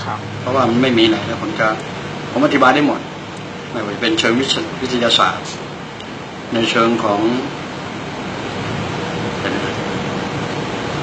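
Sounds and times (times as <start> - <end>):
steady rumbling with hiss: 0.0 - 11.0.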